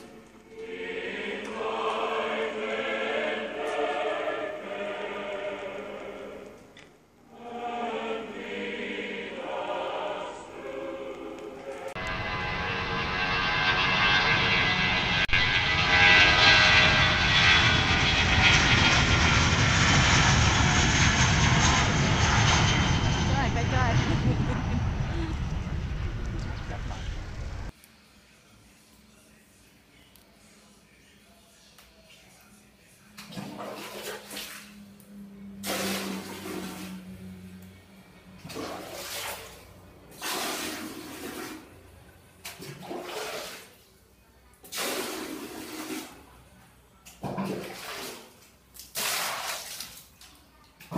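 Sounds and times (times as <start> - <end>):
jet engines rushing and whining: 11.8 - 27.7
water rushing in bathroom: 33.2 - 34.8, 35.6 - 37.2, 38.4 - 41.8, 42.4 - 43.9, 44.6 - 46.3, 47.2 - 50.4.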